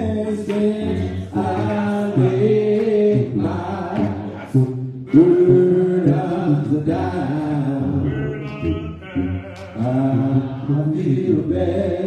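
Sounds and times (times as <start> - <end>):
congregation singing a hymn: 0.0 - 12.0.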